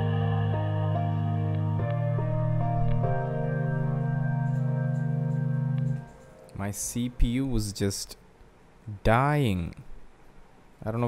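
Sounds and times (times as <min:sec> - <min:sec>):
pulsing organ-like synth chord: 0:00.0 - 0:06.2.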